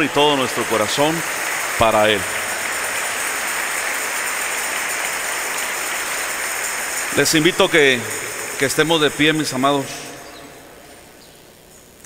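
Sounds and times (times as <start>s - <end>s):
congregation applauding: 0.0s - 11.2s.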